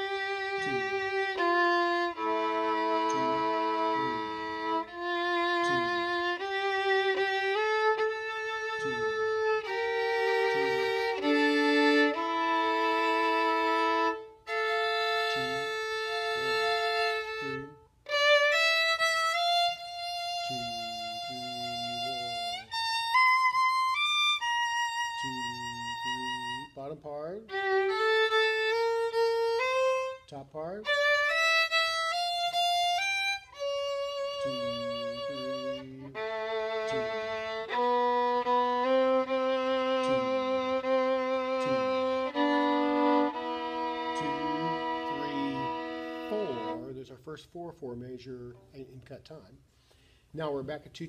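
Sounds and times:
solo violin long notes: 0.0 - 47.2
person counting: 0.2 - 14.0, 14.6 - 18.5, 20.4 - 22.8, 25.1 - 31.1, 33.6 - 47.0.

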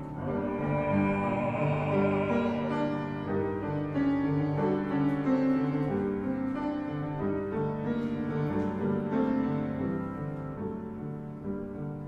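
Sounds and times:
grand piano classical music: 0.0 - 12.0.

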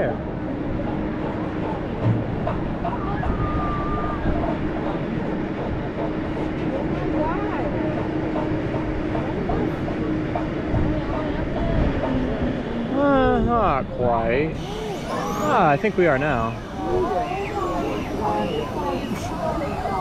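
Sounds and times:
faint distant voices: 0.0 - 20.0
mechanical hum: 0.0 - 20.0.

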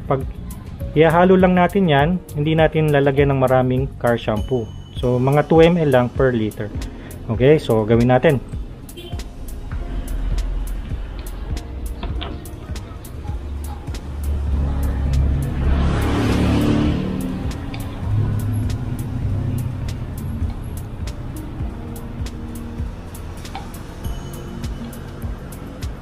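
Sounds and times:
background music with beat: 0.0 - 26.0.

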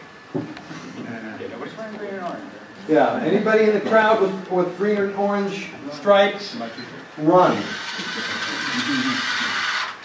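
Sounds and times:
robot drive motors whirring: 7.4 - 10.0.

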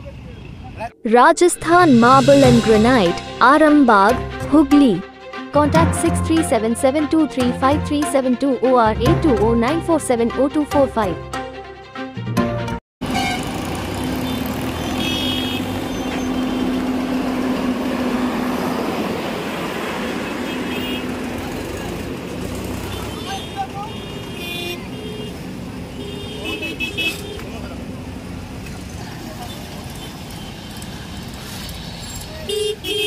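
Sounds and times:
road traffic: 0.0 - 12.1, 13.0 - 33.0
vehicle horn toots: 13.0 - 17.0, 20.0 - 21.3, 22.7 - 27.6, 32.5 - 33.0
engine hum: 13.0 - 32.3.

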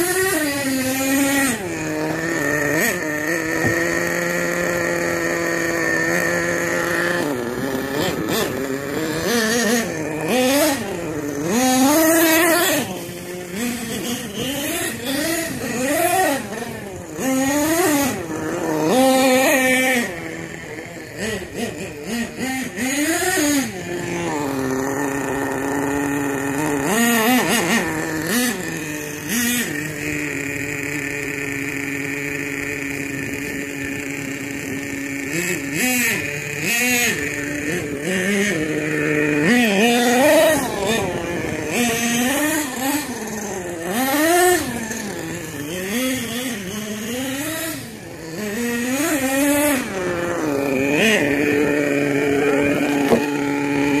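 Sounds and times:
model truck engine revving: 0.0 - 54.0.

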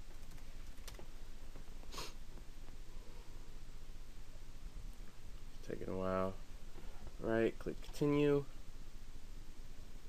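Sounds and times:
computer keyboard clicking: 0.0 - 1.1
low steady hum: 0.0 - 10.0.

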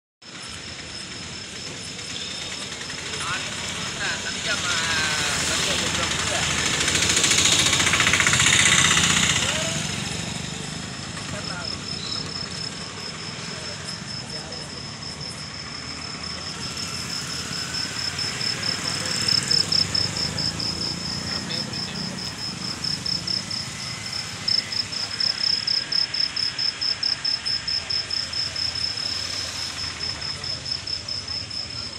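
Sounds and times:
cricket chirping: 0.2 - 31.9
engine running: 0.3 - 31.9.

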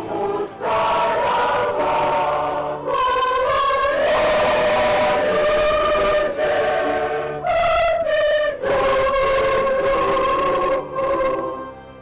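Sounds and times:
church choir singing a hymn: 0.0 - 11.7.

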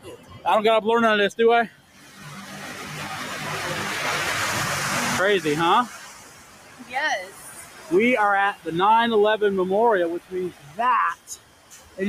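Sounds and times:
waterfall rushing: 1.9 - 12.0.

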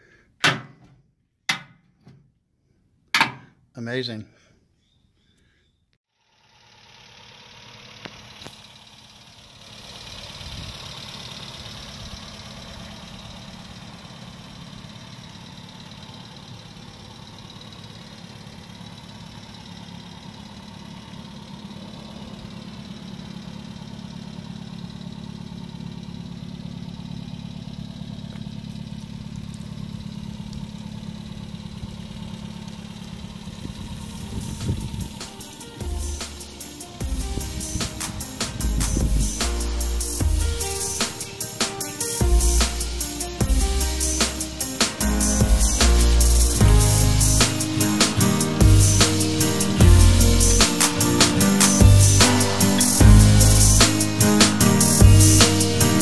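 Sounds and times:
car engine idling: 6.2 - 56.0.

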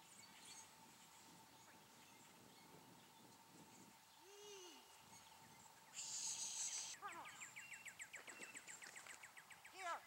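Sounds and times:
bird singing fast trill: 1.6 - 10.0
short high hiss: 6.0 - 7.0.

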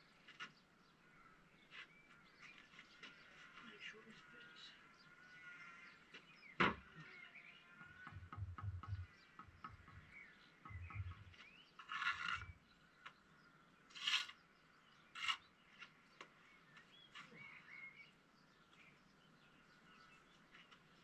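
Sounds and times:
birds chirping faintly: 0.0 - 21.0
soft knocks: 7.8 - 11.4
trowel scraping mortar on bricks: 11.8 - 12.6, 13.9 - 14.4, 15.1 - 15.5.

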